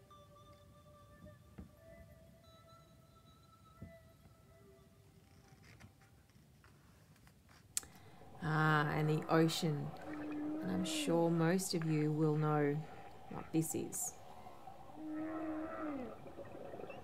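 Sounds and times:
soft background music: 0.0s - 6.8s, 7.8s - 17.0s
book page turning: 5.4s - 7.8s.

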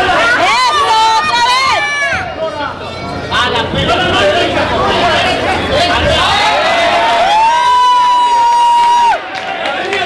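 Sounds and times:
crowd shouting and cheering: 0.0s - 10.0s
long high shout: 6.3s - 9.2s.

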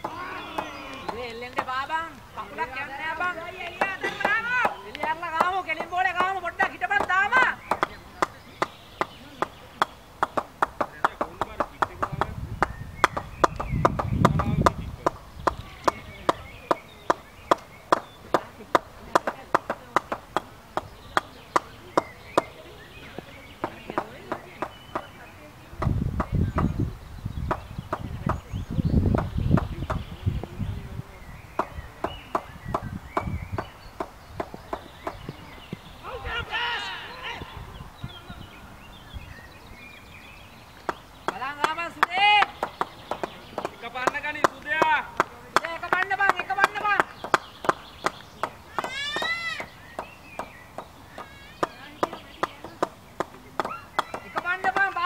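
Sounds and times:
players shouting: 0.0s - 12.3s, 36.0s - 38.3s, 48.6s - 49.8s
steady sharp knocks: 3.6s - 25.2s, 25.8s - 26.8s, 27.4s - 28.5s, 29.1s - 30.6s, 31.6s - 35.8s, 40.8s - 55.0s.

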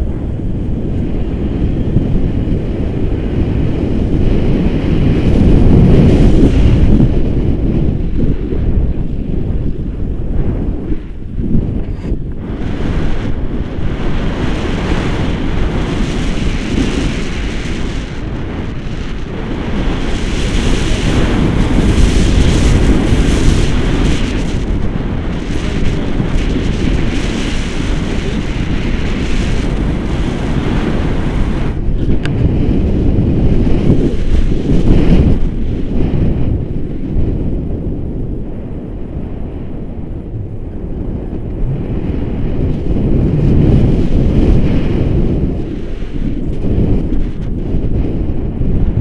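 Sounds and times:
gusting wind buffeting microphone: 0.0s - 49.0s.

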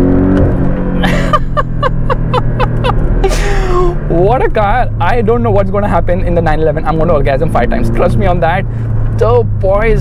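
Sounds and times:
car engine drone inside cabin: 0.0s - 10.0s
man laughing: 1.0s - 4.1s.

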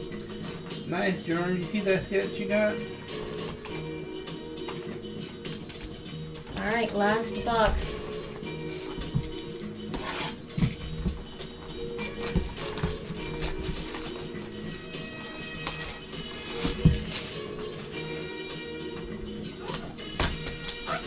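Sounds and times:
background music: 0.0s - 21.0s
shrink wrap crinkling and tearing: 11.6s - 18.3s.

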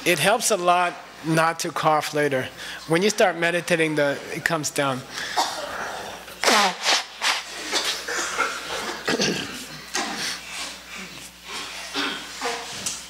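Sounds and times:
man blowing his nose: 6.4s - 12.7s.

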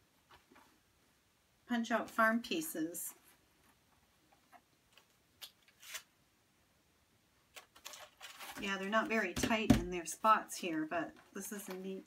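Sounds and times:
cardboard sheet rustling: 7.6s - 9.3s.

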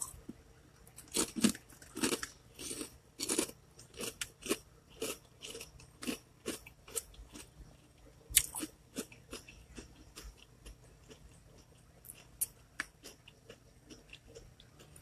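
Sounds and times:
chewing crunchy snack chips: 0.0s - 15.0s.

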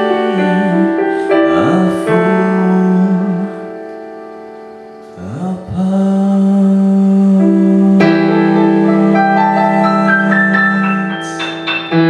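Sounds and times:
man singing held note: 0.0s - 3.8s, 5.1s - 11.6s
piano chords: 0.0s - 12.0s.

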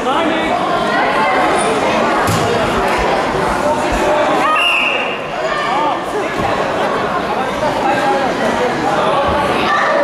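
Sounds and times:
people talking and calling: 0.0s - 10.0s
shrill whistle blast: 4.5s - 5.2s.

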